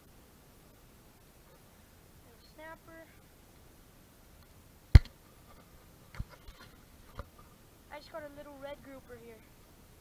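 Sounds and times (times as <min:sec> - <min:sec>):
sharp clicks: 0:05.0 - 0:05.2.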